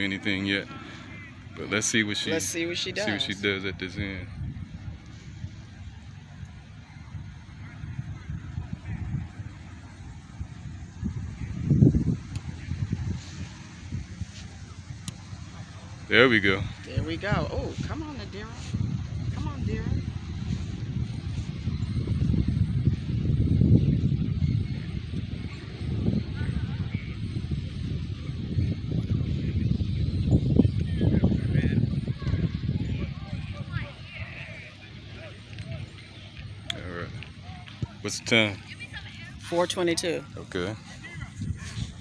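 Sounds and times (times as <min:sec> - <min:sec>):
wind buffeting microphone: 0:00.0 - 0:42.0.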